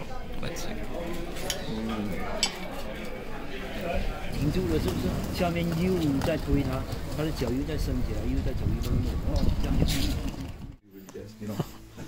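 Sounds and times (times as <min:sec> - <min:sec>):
people talking low: 0:00.0 - 0:12.0
cutlery clinking on plate: 0:02.4 - 0:02.8.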